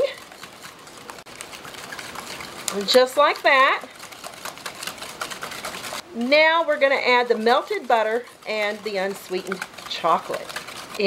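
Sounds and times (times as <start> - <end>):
whisk beating in bowl: 0.0 - 11.0
person speaking: 2.7 - 3.9, 6.1 - 11.0.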